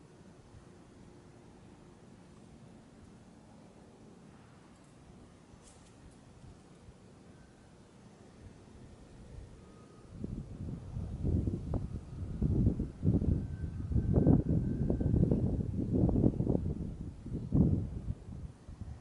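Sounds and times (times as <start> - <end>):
wind buffeting microphone: 9.2 - 19.0.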